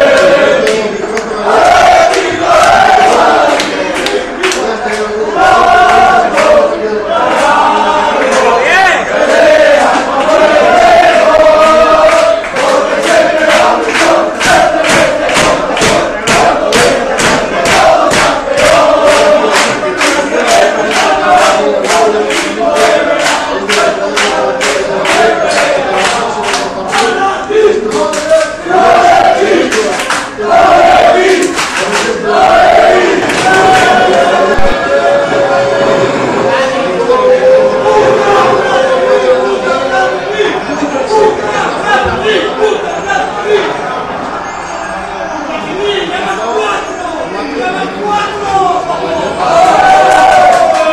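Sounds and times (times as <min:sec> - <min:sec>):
rhythmic hand claps: 0:00.0 - 0:34.8, 0:49.6 - 0:50.9
crowd chanting and singing: 0:00.0 - 0:50.9.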